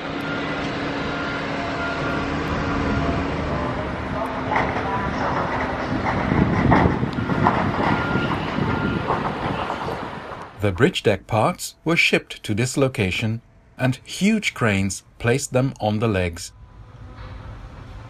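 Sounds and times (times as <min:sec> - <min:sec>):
train rumbling and rattling: 0:00.0 - 0:18.0.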